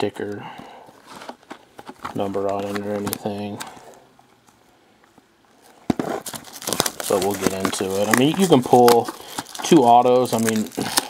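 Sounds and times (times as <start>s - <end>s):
shrink-wrapped box handling: 0.9s - 3.8s, 5.9s - 11.0s.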